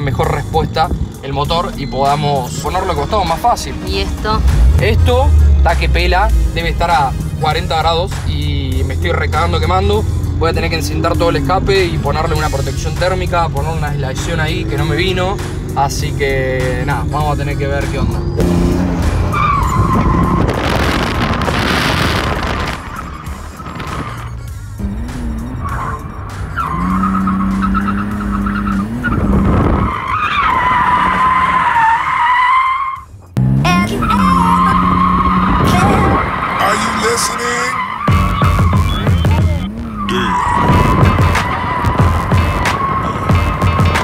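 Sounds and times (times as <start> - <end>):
tyres squealing: 0.0 - 4.4, 19.2 - 20.7, 22.6 - 44.0
car engine revving: 0.0 - 44.0.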